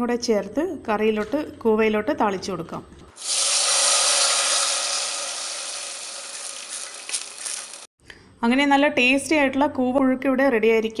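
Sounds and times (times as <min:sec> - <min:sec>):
spices sizzling in hot oil: 0:03.2 - 0:07.9.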